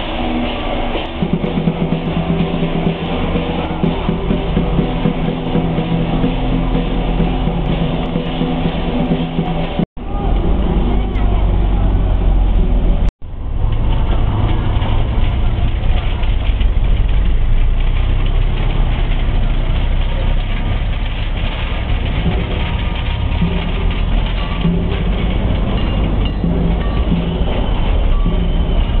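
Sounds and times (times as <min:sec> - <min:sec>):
gong and drum ensemble playing: 0:00.0 - 0:13.1, 0:17.0 - 0:29.0.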